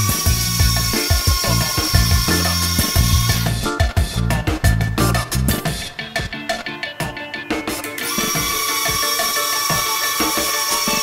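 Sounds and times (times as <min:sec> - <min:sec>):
high electric servo whine: 0:00.0 - 0:03.6, 0:08.0 - 0:11.0
background music with steady beat: 0:00.0 - 0:11.0.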